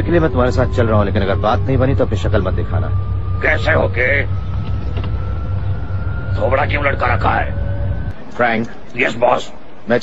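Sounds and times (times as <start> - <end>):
car engine rumble: 0.0 - 8.9
road noise: 0.0 - 10.0.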